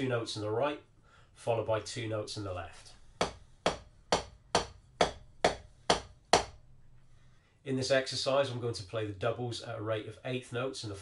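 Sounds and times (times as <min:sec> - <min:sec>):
drumsticks striking practice pad: 0:03.2 - 0:06.6.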